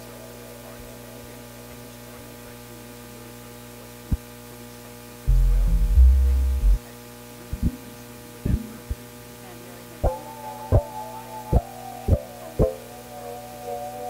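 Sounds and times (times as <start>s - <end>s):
electrical mains hum: 0.0s - 14.0s
deep bass keyboard notes: 5.3s - 6.8s, 8.5s - 9.0s.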